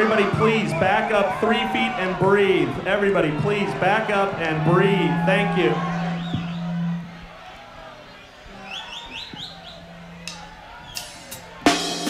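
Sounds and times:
rising whistle-like chirps: 4.9 - 11.2.

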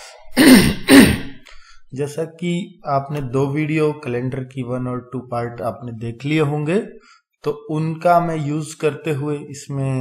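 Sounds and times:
man clearing his throat: 0.4 - 1.4.

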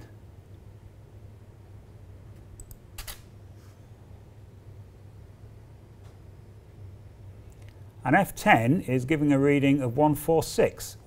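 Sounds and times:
low steady hum: 0.0 - 11.0
camera shutter clack: 3.0 - 3.3.

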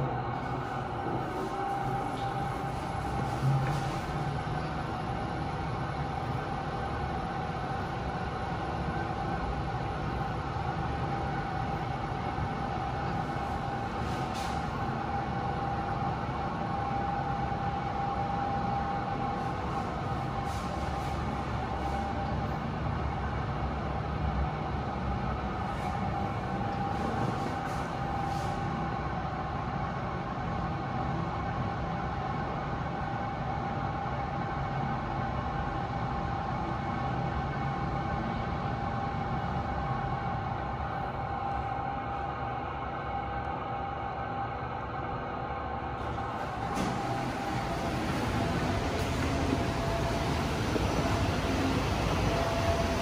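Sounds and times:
steady multi-tone hum: 0.0 - 53.0
low lift rumble: 33.9 - 53.0.

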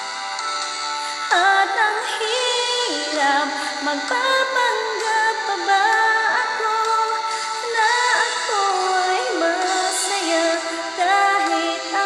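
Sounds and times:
woman singing pop ballad: 0.0 - 12.0.

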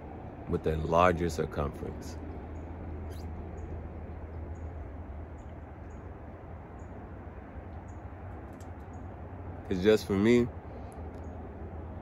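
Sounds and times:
low background rumble: 0.0 - 12.0
small bird chirping: 2.4 - 9.8.

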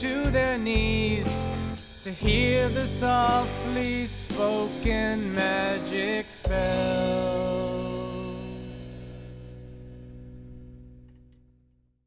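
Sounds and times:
guitar and bass chord ringing: 0.0 - 12.0.

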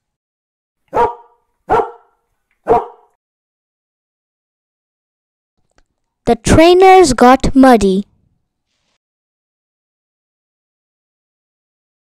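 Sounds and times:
dog barking: 0.9 - 3.2.

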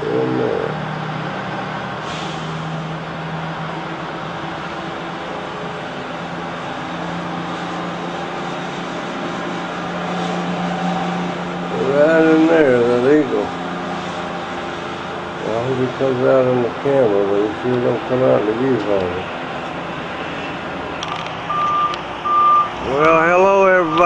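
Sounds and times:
vehicle engine running: 0.0 - 24.0.

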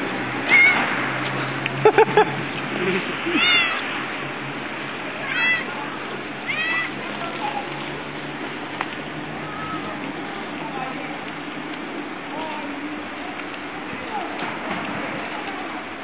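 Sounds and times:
cat meowing: 0.5 - 0.9, 3.3 - 3.9, 5.2 - 5.7, 6.4 - 7.0.

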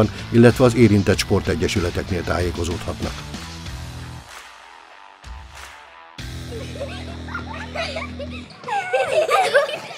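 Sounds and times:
girls laughing and squealing: 6.4 - 9.9.

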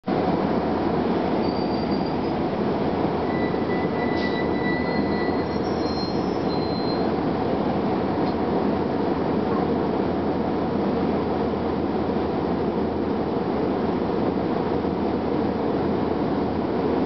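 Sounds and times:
road noise: 0.0 - 17.0
bus diesel engine running: 0.1 - 17.0.

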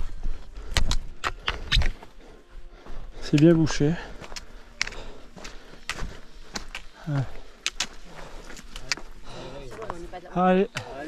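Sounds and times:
footsteps on loose rock: 3.3 - 11.0.

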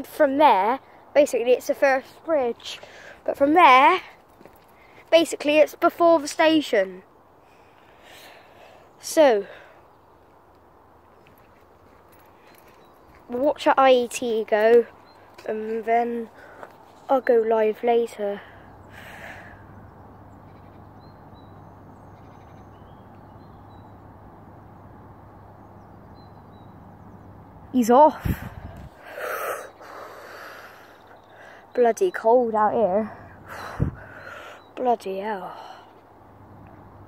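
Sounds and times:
footsteps on tarmac: 2.0 - 5.5, 10.2 - 17.4
person exhaling hard: 28.2 - 31.0.

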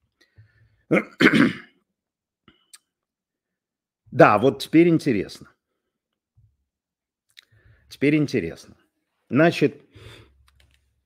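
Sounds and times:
man clearing throat: 0.9 - 1.8.

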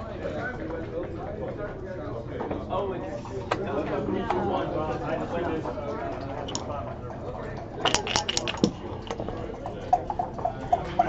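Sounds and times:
dice clicking on board: 7.8 - 9.4
sharp dice knock: 7.8 - 9.5.

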